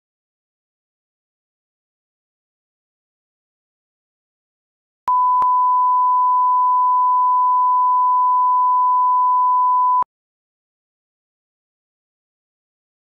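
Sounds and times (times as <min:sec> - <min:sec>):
electronic test tone: 0:05.1 - 0:10.0.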